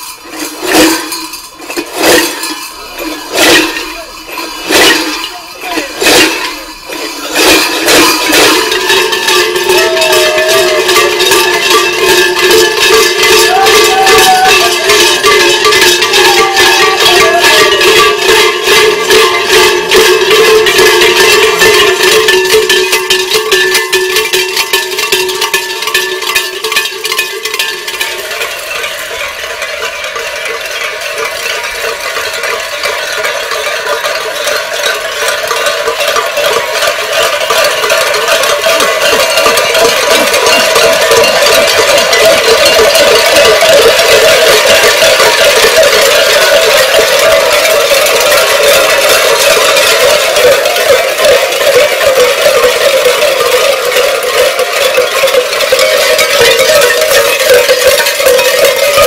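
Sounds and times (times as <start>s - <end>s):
large metal bells clanging: 0.0s - 59.0s.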